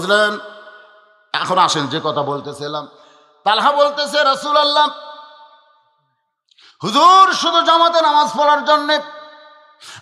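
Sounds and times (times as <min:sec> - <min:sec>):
man speaking over public address: 0:00.0 - 0:00.7, 0:01.3 - 0:05.2
intake of breath: 0:03.0 - 0:03.4, 0:06.5 - 0:06.8, 0:09.8 - 0:10.0.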